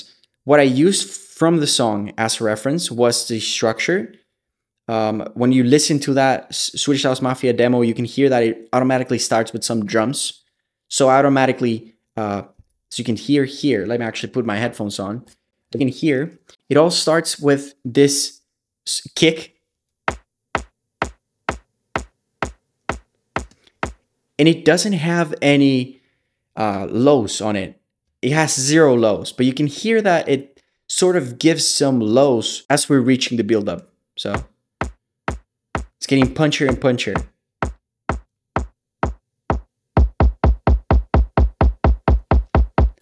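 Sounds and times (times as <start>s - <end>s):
electronic kick drum: 20.1s - 24.0s, 34.4s - 43.0s.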